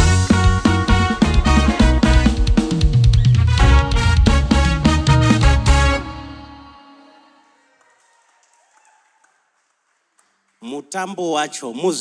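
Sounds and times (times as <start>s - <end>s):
live band final chord ringing: 0.0s - 7.4s.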